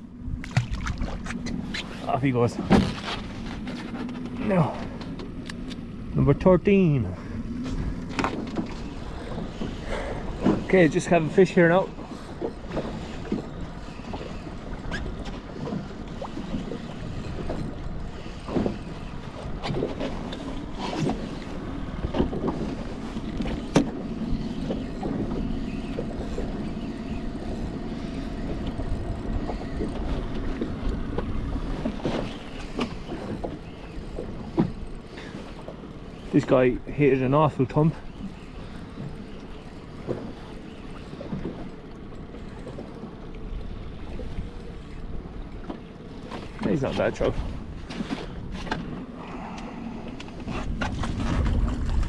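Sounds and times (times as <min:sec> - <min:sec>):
water lapping against boat hull: 0:00.0 - 0:52.0
wind on microphone: 0:49.8 - 0:52.0.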